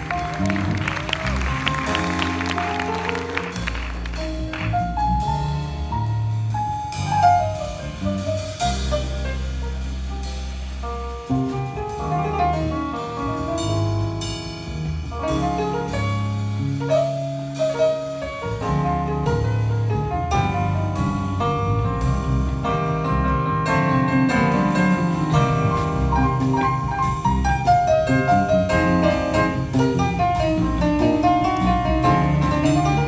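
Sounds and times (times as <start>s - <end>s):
jazz band playing: 0.0s - 33.0s
piano: 0.0s - 33.0s
drum hits: 20.2s - 33.0s.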